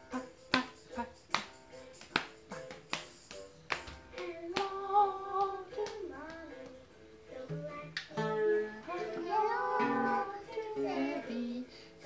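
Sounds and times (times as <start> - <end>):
family singing children's song: 0.0 - 12.0.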